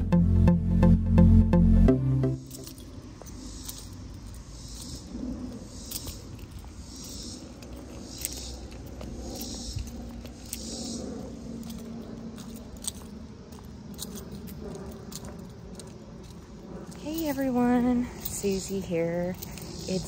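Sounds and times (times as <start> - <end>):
low outdoor rumble: 0.0 - 20.0
footsteps on asphalt: 2.4 - 20.0.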